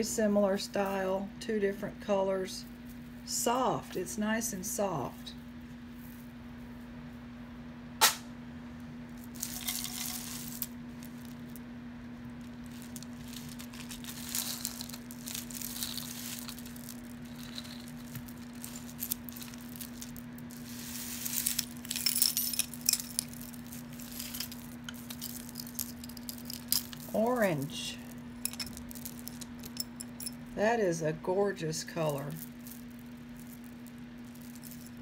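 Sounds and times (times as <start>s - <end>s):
steady low hum: 0.0s - 35.0s
sharp click: 8.0s - 8.3s
jewelry clinking and rattling: 9.2s - 11.6s, 12.3s - 30.5s, 32.0s - 35.0s.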